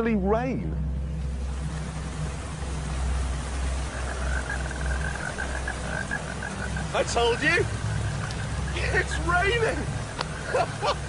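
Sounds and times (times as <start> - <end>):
low rumble: 0.0 - 11.0
steady rain falling: 0.7 - 11.0
frog calling in pulses: 3.7 - 11.0.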